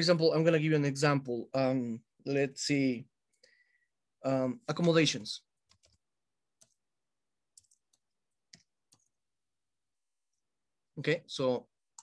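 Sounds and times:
computer keyboard keystrokes: 5.7 - 6.0, 7.6 - 9.1.

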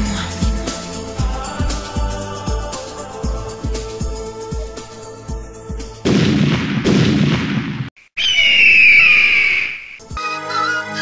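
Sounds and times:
loud explosion-like blast: 6.0 - 7.9
high whistling tone: 8.2 - 10.2.

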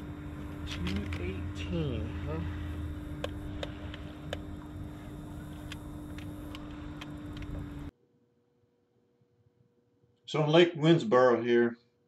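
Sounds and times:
boat motor running: 0.0 - 7.9.

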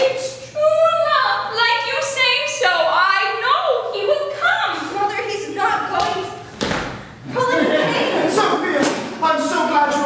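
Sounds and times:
heavy thump echoing in hall: 5.9 - 7.2.

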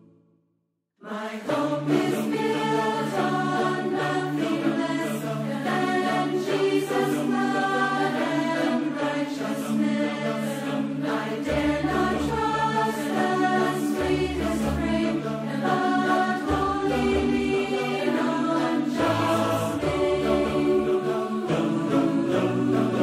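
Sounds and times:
choir singing in harmony: 1.0 - 23.0.

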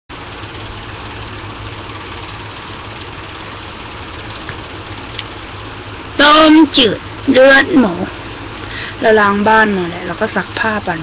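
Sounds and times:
low hum: 0.1 - 11.0.

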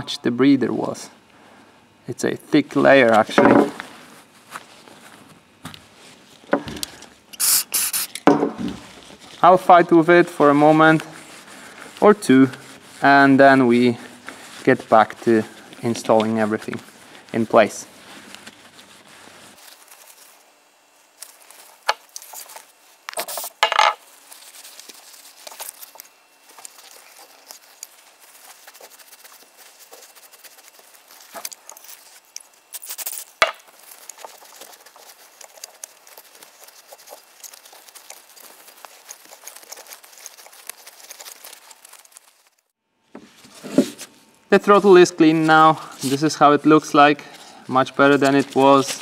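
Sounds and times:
cleaner spray hiss: 7.4 - 8.2.

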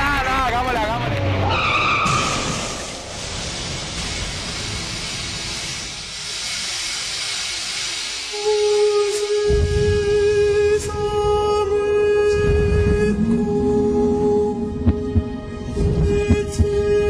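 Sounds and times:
car crash: 0.7 - 6.0
tyres squealing in a skid: 1.3 - 3.1.

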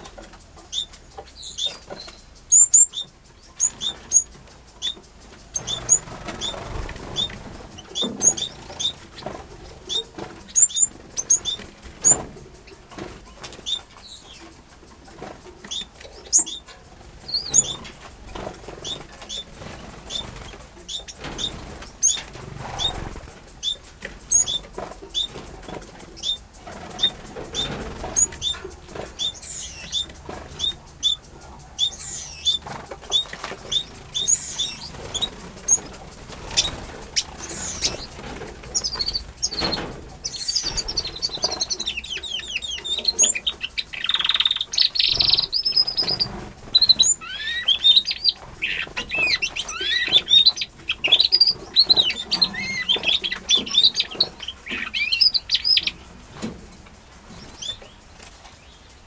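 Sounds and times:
finches chirping: 0.0 - 56.4, 57.3 - 59.0.

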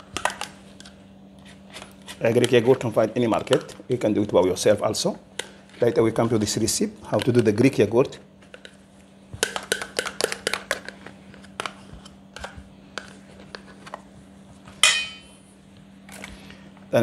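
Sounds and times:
ringing clink: 14.8 - 15.3.

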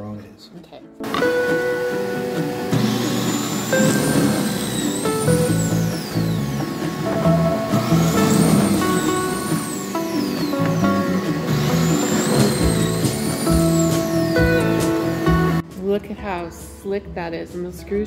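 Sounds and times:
background music: 0.0 - 18.0
electric drilling machine motor: 2.4 - 15.6.

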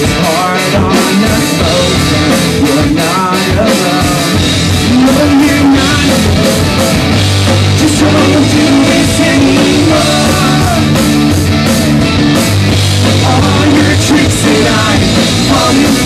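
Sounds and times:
bass guitar: 0.0 - 16.0
drum kit: 0.0 - 16.0
electric guitars: 0.0 - 16.0.

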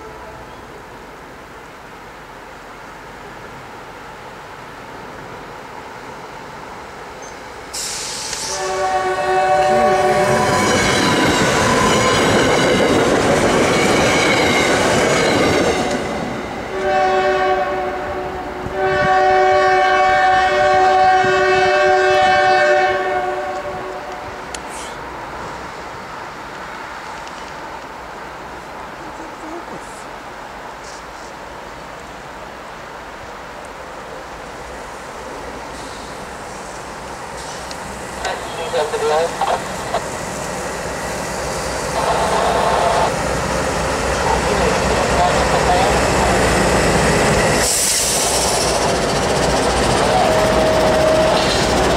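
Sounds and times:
train horn: 0.0 - 0.7, 8.4 - 12.9, 15.2 - 24.4, 41.9 - 43.2, 44.3 - 46.2, 50.0 - 51.8
locomotive horn blasts: 8.4 - 11.0, 16.7 - 24.4, 42.0 - 43.1
train wheels clattering: 47.0 - 51.9.

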